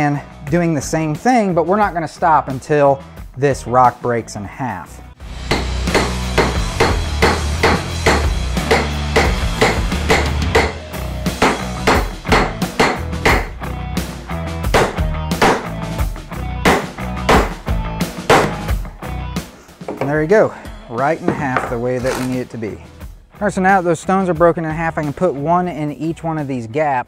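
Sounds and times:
hammer striking steel chisel: 5.5s - 10.8s, 11.4s - 13.5s, 18.3s - 18.6s.

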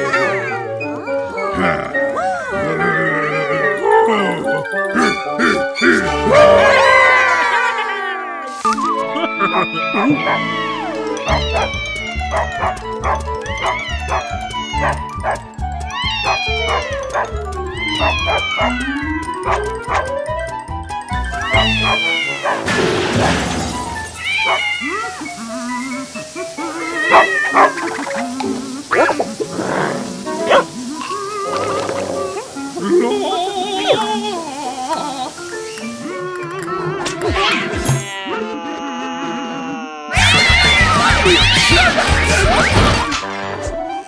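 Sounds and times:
upbeat cartoon music: 0.0s - 39.0s, 40.1s - 44.0s
cartoon sound effects: 21.4s - 26.0s, 40.1s - 43.3s
cartoon vocal noises: 30.5s - 35.4s.

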